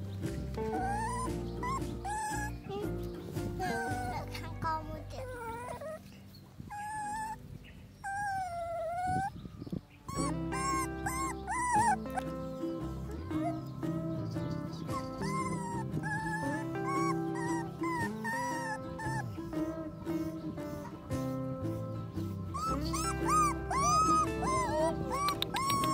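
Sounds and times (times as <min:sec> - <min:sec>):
background music with held notes: 0:00.0 - 0:09.4, 0:10.0 - 0:25.9
puppy whimpering: 0:00.6 - 0:25.9.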